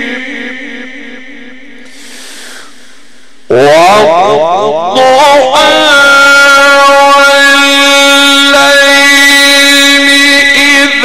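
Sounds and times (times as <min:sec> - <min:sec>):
man chanting through microphone: 0:00.0 - 0:11.0.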